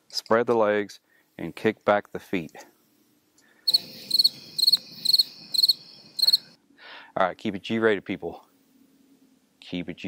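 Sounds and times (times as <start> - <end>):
cricket chirping: 3.6 - 6.6.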